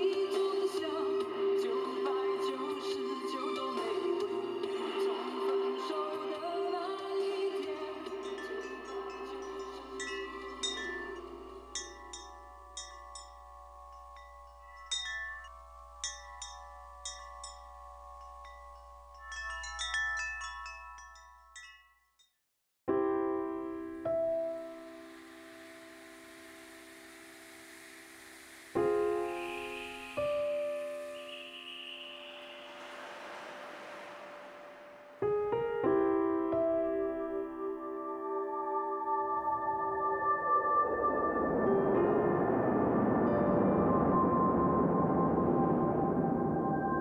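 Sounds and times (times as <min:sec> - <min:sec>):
wind chimes ringing: 0:07.2 - 0:22.4, 0:25.2 - 0:35.2
piano chord: 0:22.9 - 0:47.0
faint hiss: 0:23.6 - 0:36.8.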